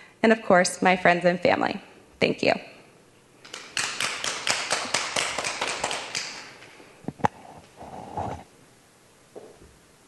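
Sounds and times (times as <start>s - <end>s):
audience applauding: 3.6s - 6.6s.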